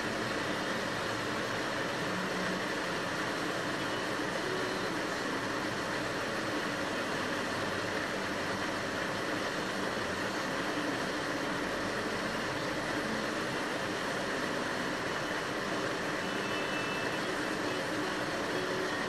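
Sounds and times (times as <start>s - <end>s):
vehicle idling hum: 0.0s - 19.0s.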